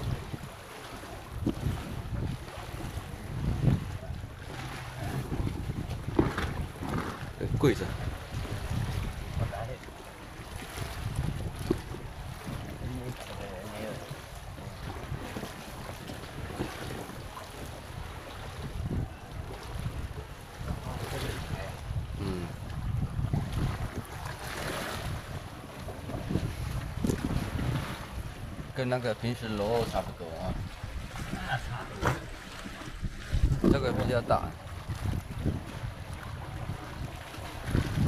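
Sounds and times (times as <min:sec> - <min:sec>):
water lapping against seawall: 0:00.0 - 0:38.0
wind buffeting microphone: 0:00.0 - 0:38.0.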